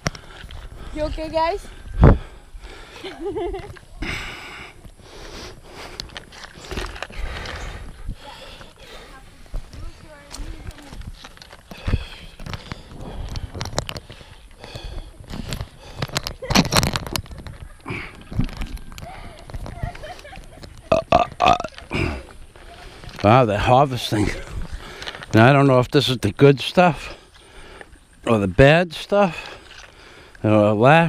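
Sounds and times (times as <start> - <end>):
microphone rustling and handling: 9.4 - 21.9.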